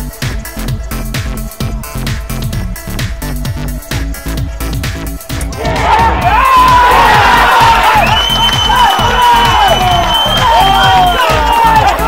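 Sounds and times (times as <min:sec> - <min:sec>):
electronic music with steady beat: 0:00.0 - 0:12.0
crowd shouting and cheering: 0:05.4 - 0:12.0.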